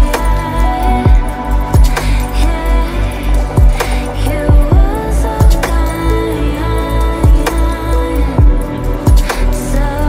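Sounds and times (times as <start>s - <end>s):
electronic music: 0.0s - 10.0s
deep kick drums: 0.9s - 2.2s, 3.4s - 3.9s, 4.5s - 5.7s, 7.2s - 7.5s, 8.4s - 9.3s.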